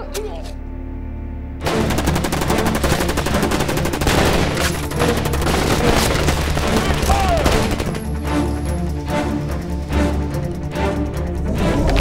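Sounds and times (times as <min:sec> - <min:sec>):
automatic gunfire: 0:01.6 - 0:08.0.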